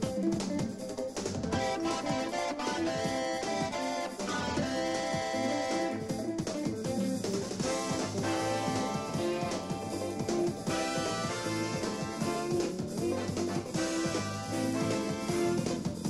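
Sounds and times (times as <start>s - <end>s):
bass guitar: 0.0s - 16.0s
drums: 0.0s - 16.0s
electric guitar: 0.0s - 16.0s
keyboards: 0.0s - 16.0s.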